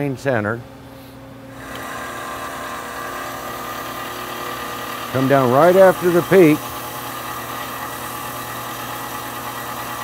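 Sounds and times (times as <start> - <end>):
polishing machine whirring: 1.6 - 10.0.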